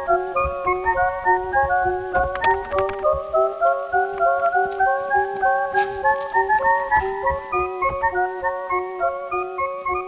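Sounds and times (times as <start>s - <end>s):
light repeating plucked melody: 0.0s - 10.0s
soft regular beat: 4.0s - 8.3s.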